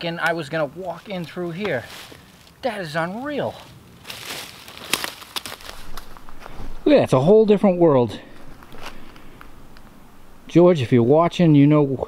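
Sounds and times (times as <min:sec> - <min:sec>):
footsteps on dry forest floor: 0:00.4 - 0:10.0.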